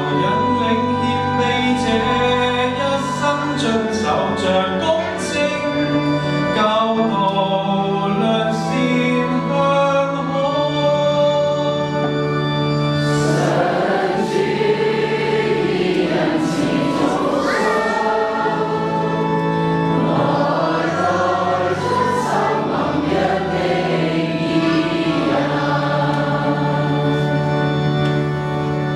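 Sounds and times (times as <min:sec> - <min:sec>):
choir singing a psalm: 0:00.0 - 0:04.5, 0:13.0 - 0:28.2
organ accompaniment: 0:00.0 - 0:28.9.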